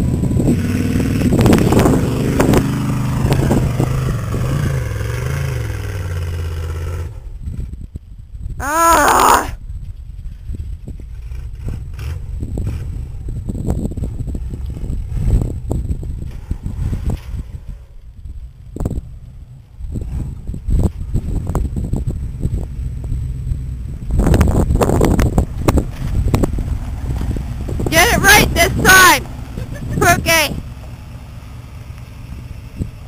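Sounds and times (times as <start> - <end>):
distant truck engine rumble: 0.0 - 7.9, 10.5 - 33.0.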